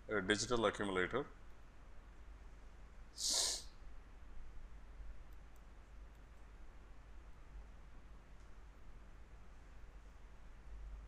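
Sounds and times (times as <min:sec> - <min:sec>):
steady low hum: 0:00.0 - 0:11.0
man's sharp breath through nose: 0:03.2 - 0:03.7.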